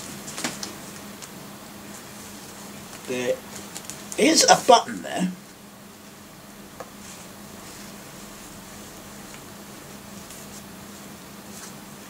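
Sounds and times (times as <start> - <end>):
steady low hum: 0.0 - 12.0
jacket fabric rustling: 6.9 - 12.0.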